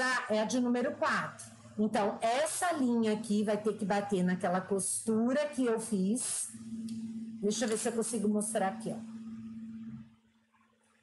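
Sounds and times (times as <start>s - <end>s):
steady low hum: 0.0s - 10.2s.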